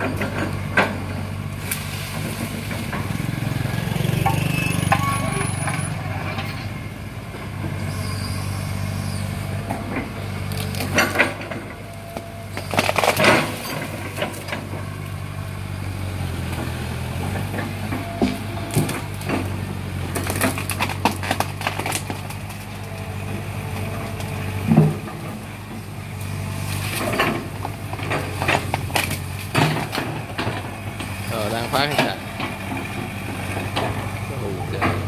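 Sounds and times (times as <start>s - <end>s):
excavator diesel engine running: 0.0s - 35.0s
wood cracking and snapping: 10.5s - 14.7s, 18.2s - 23.1s, 26.8s - 31.2s.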